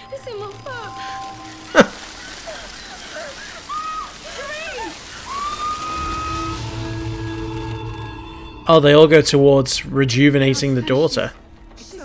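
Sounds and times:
faint hiss: 0.0 - 8.1
low rumbling drone: 5.5 - 12.0.

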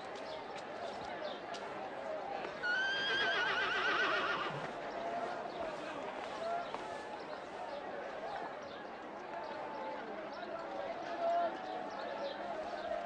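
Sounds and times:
murmur of voices: 0.0 - 13.0
horse whinnying: 2.7 - 4.6.

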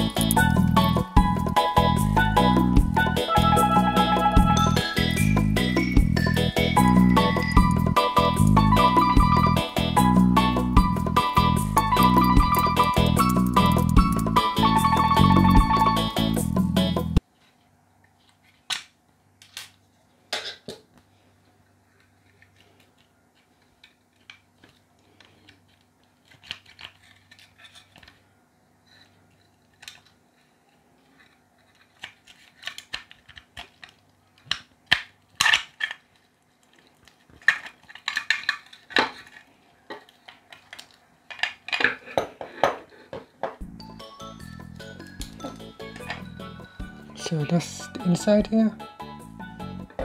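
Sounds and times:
metal parts clicking and clinking: 0.0 - 1.6, 12.3 - 14.4.

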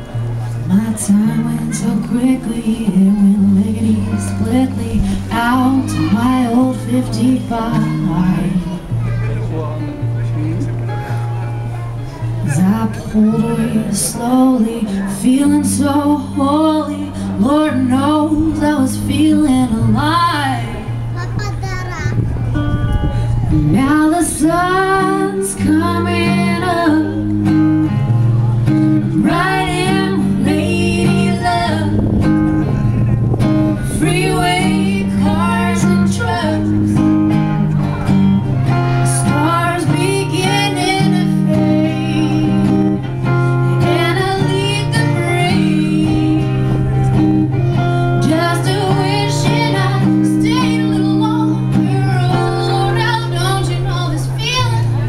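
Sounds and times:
guitar strummed chords: 0.0 - 55.0
woman singing: 0.7 - 8.9, 12.4 - 21.1, 23.6 - 27.5, 29.0 - 32.3, 33.8 - 37.0, 38.7 - 47.2, 47.8 - 54.9.

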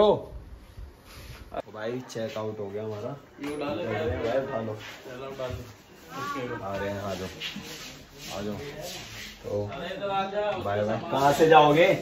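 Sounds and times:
rubbing scraping noise: 4.2 - 9.7.

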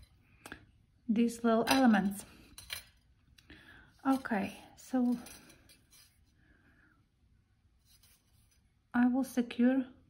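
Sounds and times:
faint scratching of wire: 4.0 - 6.4, 7.8 - 8.8.

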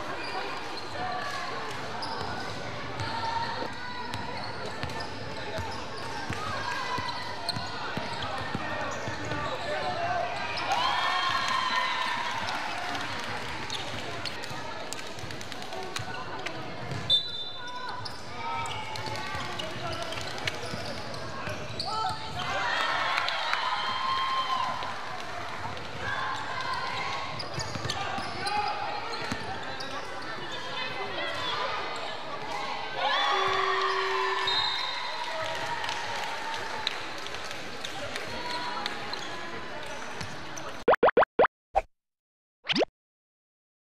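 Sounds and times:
shoes on the court: 24.8 - 30.7
cartoon bloops rising in pitch: 40.8 - 41.9, 42.7 - 42.9.

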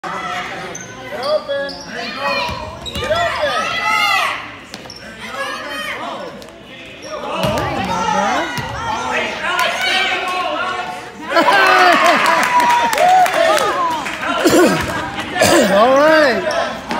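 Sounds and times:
basketball bouncing on gym floor: 7.4 - 8.0.

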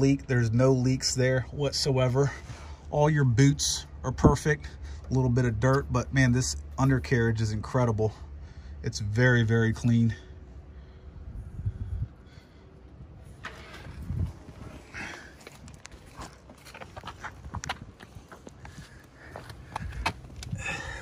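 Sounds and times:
microphone handling noise: 13.3 - 18.8
footsteps on asphalt: 13.3 - 21.0.

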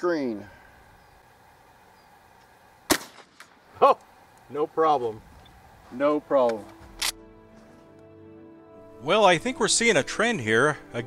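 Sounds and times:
shotgun shot: 2.9 - 3.6.

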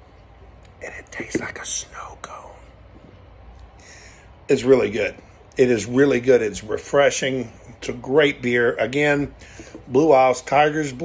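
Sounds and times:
man whispered mouth sounds: 0.5 - 3.8.

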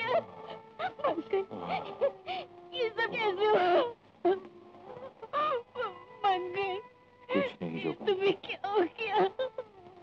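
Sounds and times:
woman wailing and sobbing: 0.0 - 4.5, 5.1 - 6.2, 7.3 - 9.7.

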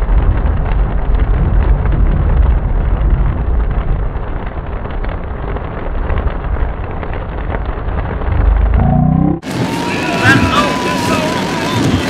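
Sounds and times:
heavy rain on car roof: 0.0 - 8.8, 9.4 - 12.0
low road rumble: 0.0 - 12.0
rising pitched sound: 8.2 - 9.6.

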